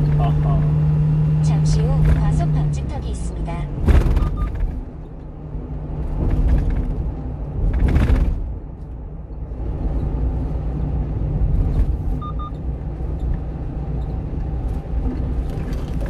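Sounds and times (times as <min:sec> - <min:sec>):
truck engine and road noise: 0:00.0 - 0:16.0
short beeps: 0:12.2 - 0:12.6.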